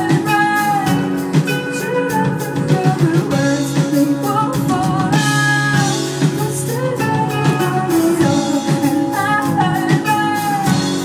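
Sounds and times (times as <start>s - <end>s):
drum beat: 0.0s - 11.0s
woman singing: 0.0s - 11.0s.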